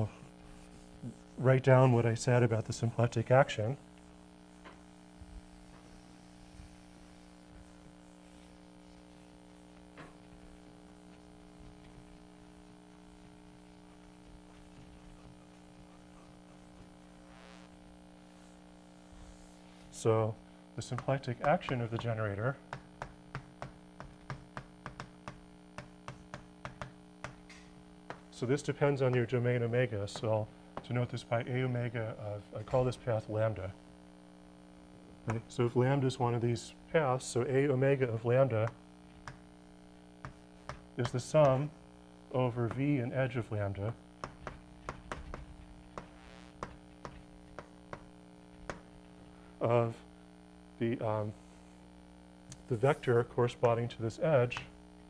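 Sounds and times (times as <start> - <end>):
electrical hum: 0.0 - 55.0
chalk scratch: 0.2 - 2.7, 5.8 - 9.3, 18.3 - 19.9, 52.6 - 53.2
chalk tapping on blackboard: 0.5 - 1.4, 20.9 - 22.1, 22.7 - 28.3, 38.6 - 39.5, 40.2 - 41.7, 44.2 - 48.9.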